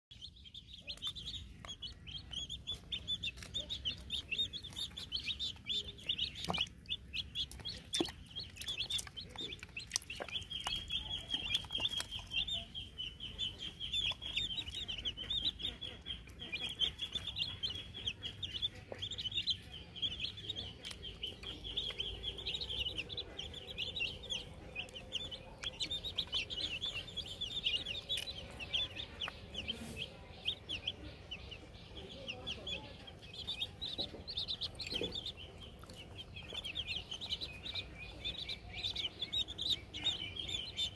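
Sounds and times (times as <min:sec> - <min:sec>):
chicks peeping: 0:00.1 - 0:40.9.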